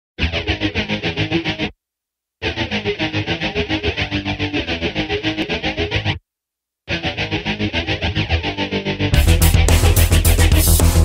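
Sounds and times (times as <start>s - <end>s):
rock music with distorted guitar: 0.2s - 1.7s, 2.4s - 6.2s, 6.9s - 11.0s.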